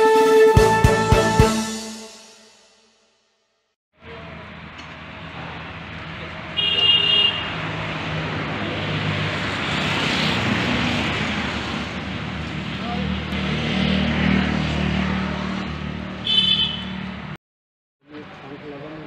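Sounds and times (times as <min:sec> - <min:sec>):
road traffic noise: 0:04.0 - 0:17.4, 0:18.0 - 0:19.0
short high horn toot: 0:16.2 - 0:17.0.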